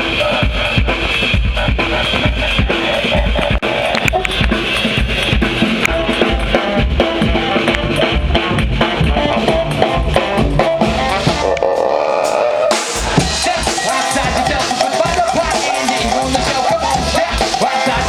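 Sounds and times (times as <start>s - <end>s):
drum kit beat: 0.0s - 18.0s
trombone and saxophone: 0.0s - 18.0s
hand drums and tambourine: 13.0s - 18.0s.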